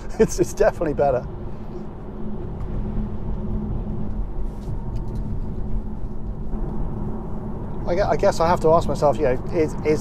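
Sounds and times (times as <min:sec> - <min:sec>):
tyre and road rumble: 0:00.0 - 0:10.0.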